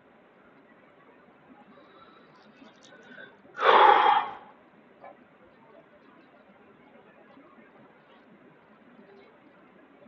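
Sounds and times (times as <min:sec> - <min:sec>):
man exhaling loudly: 0:03.6 - 0:04.5.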